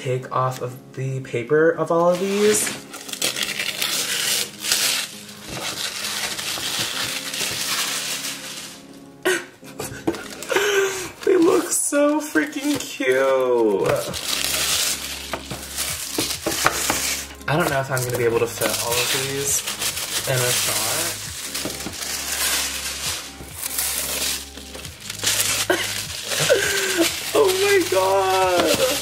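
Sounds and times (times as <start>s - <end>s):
paper tearing and crinkling: 2.0s - 29.0s
person making wordless sounds: 26.3s - 29.0s.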